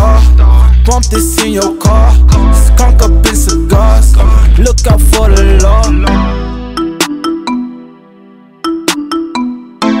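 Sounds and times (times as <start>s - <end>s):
bass: 0.0s - 7.1s
synth melody of short notes: 5.0s - 10.0s.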